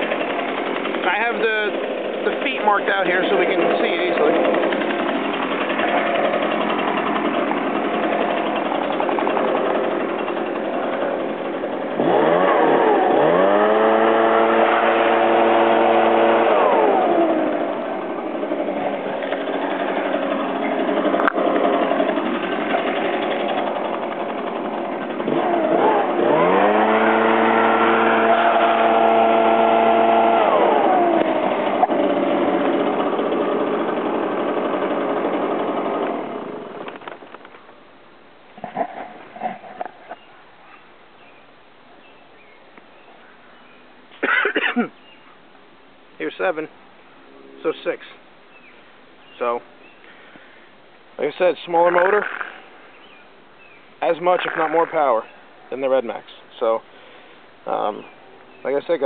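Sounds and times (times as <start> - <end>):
leaf blower engine revving: 0.0 - 37.6, 51.2 - 59.0.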